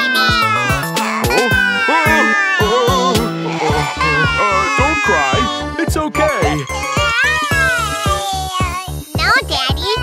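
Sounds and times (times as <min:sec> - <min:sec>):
cartoon kitten crying: 0:00.0 - 0:08.9
children's background music: 0:00.0 - 0:10.0.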